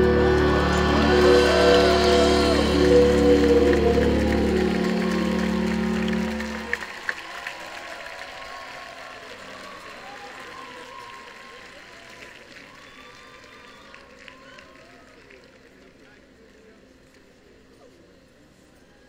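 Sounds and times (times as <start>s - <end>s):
low bass drone: 0.0s - 6.9s
organ-like keyboard chords: 0.0s - 6.9s
crowd applause: 0.0s - 16.6s.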